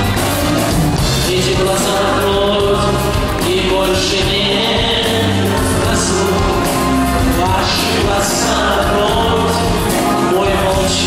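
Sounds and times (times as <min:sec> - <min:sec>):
amplified backing music: 0:00.0 - 0:11.0
choir-like backing voices: 0:00.0 - 0:11.0
man singing pop ballad: 0:01.0 - 0:11.0.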